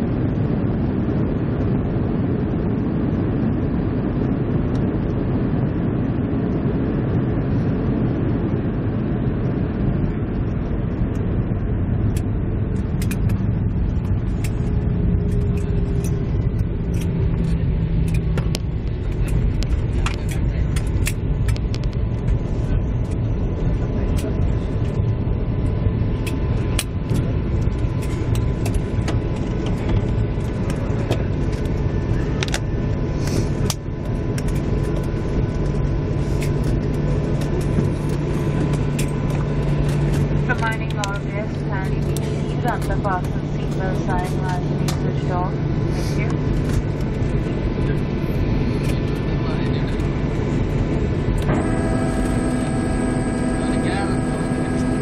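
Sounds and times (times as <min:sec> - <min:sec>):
airliner wheels and engines rumbling: 0:00.0 - 0:55.0.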